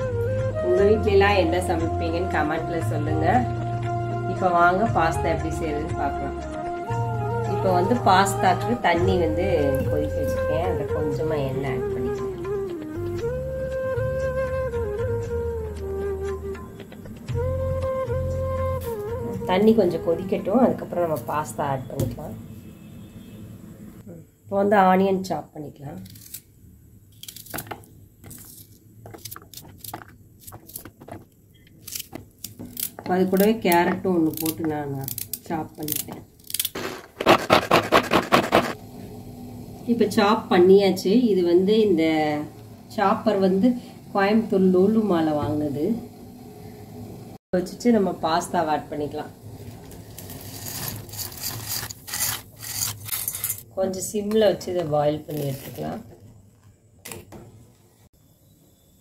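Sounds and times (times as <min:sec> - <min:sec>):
onion layers crackling and tearing: 0:26.0 - 0:26.5, 0:27.1 - 0:31.0, 0:31.6 - 0:36.8, 0:50.0 - 0:53.5, 0:55.2 - 0:55.9
spoon scraping steel pot: 0:50.2 - 0:53.6.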